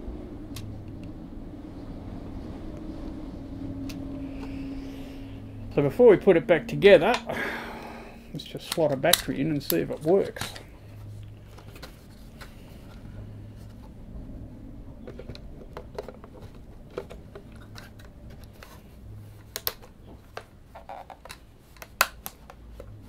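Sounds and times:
low steady hum: 0.0 - 23.0.

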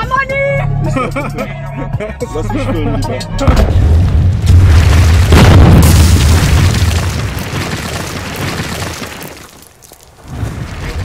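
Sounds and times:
deep booming rumble: 3.4 - 8.0
crashing impact: 3.5 - 11.0.

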